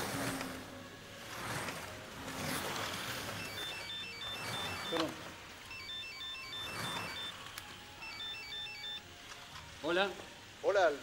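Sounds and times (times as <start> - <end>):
flip phone ringtone beeps: 3.2 - 7.4, 8.0 - 9.0.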